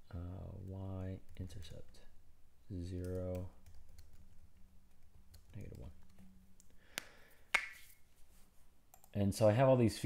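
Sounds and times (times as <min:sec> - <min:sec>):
computer keyboard keystrokes: 0:03.0 - 0:04.2.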